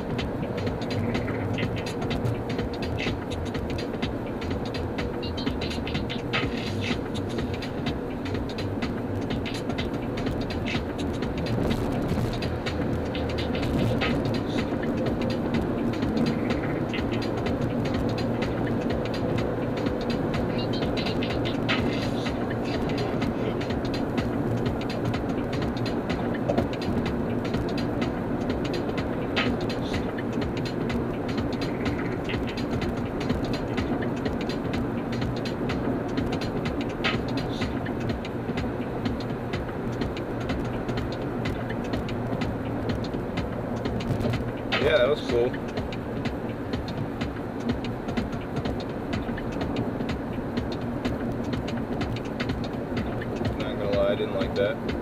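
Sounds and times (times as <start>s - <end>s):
drivetrain hum: 0.0s - 55.0s.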